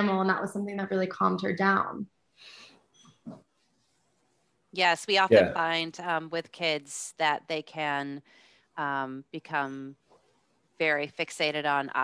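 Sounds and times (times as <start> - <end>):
faint breath near microphone: 2.3 - 2.9, 8.2 - 8.8.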